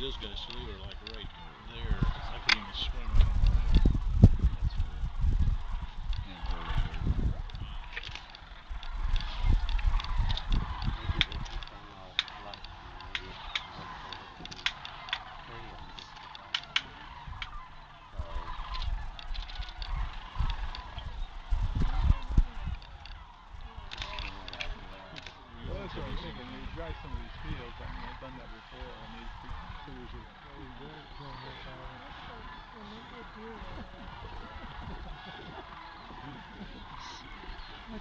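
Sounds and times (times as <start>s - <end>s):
low rumble on microphone: 0.0s - 14.3s, 14.9s - 38.0s
cranes calling: 0.0s - 38.0s.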